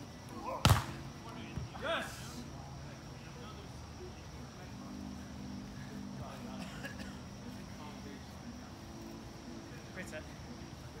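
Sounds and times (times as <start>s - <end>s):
faint men's voices: 0.0s - 11.0s
high-pitched insect drone: 2.1s - 11.0s.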